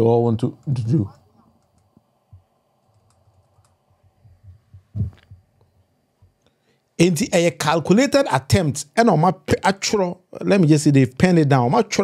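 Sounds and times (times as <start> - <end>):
keyboard typing: 2.8 - 3.8.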